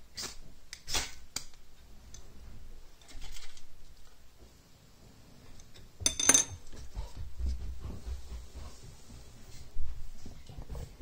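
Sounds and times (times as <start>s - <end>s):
metal rod clinking on stone: 6.0s - 6.6s.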